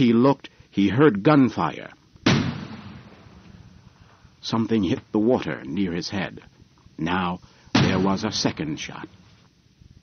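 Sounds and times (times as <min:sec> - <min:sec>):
gunshot with echo: 0:02.3 - 0:03.4, 0:07.8 - 0:08.5.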